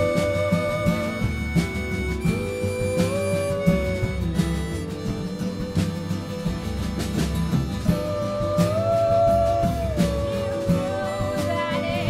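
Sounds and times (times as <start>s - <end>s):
acoustic folk band playing: 0.0s - 12.0s
harmonica melody: 0.0s - 12.0s.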